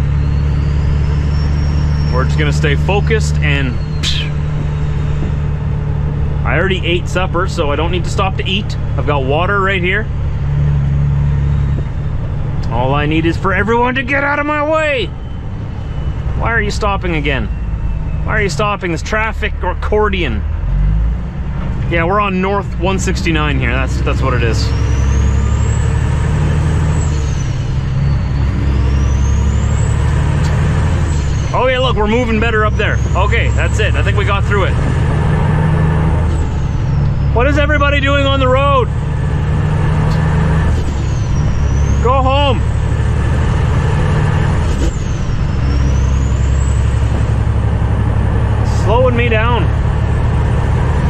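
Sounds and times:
truck diesel engine drone: 0:00.0 - 0:51.0.

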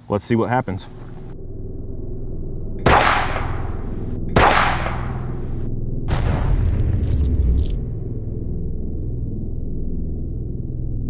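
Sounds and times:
low hum: 0:00.0 - 0:11.0
loud gunshot-like bangs: 0:02.9 - 0:03.6, 0:04.4 - 0:05.4.

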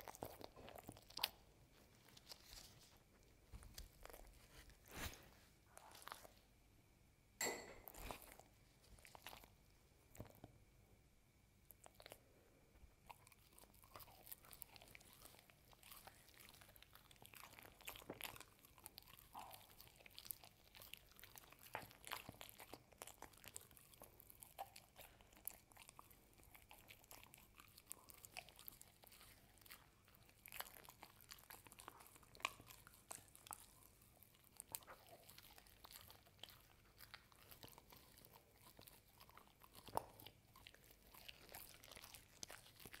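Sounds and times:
dog chewing: 0:00.0 - 0:06.4, 0:07.8 - 0:10.5, 0:13.0 - 0:43.0.

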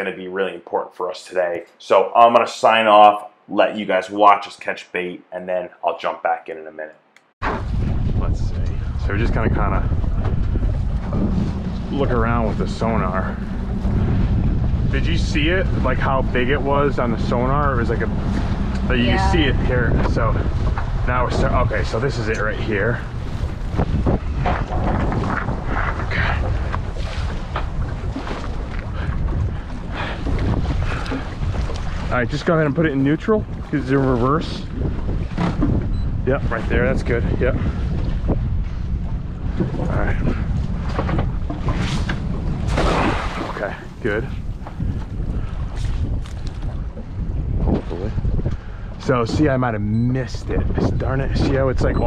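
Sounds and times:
wind buffeting microphone: 0:07.4 - 0:52.0
water slapping against boat hull: 0:19.8 - 0:32.2, 0:39.4 - 0:49.8.

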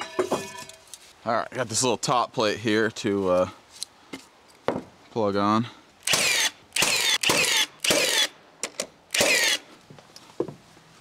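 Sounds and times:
hand saw cutting timber: 0:06.0 - 0:08.3, 0:09.1 - 0:09.7.

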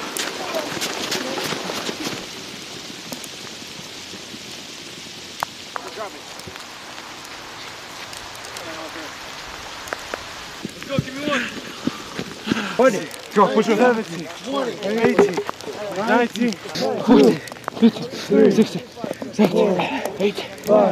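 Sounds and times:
steady pattering hiss: 0:00.0 - 0:20.9.

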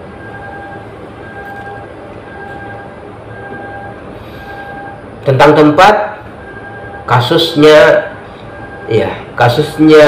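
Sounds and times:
repeating electronic beep: 0:00.2 - 0:05.0, 0:06.4 - 0:07.9, 0:08.5 - 0:10.0.

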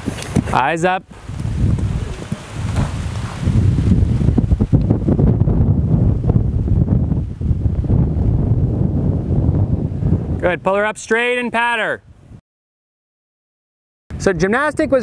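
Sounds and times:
wind buffeting microphone: 0:00.0 - 0:12.4.

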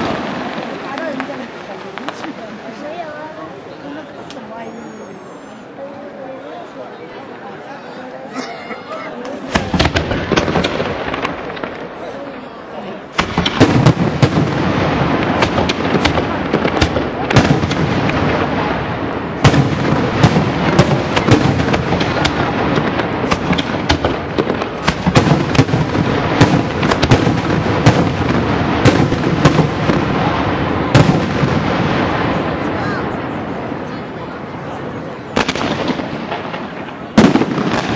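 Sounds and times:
firework shells bursting: 0:13.2 - 0:32.0.

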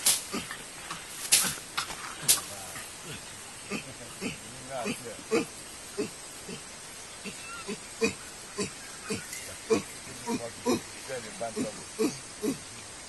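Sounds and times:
chimpanzee grunting: 0:00.2 - 0:00.6, 0:02.2 - 0:12.8.

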